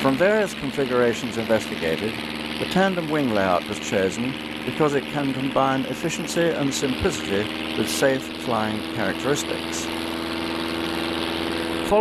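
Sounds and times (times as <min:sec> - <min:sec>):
propeller aircraft engine drone: 0:00.0 - 0:12.0.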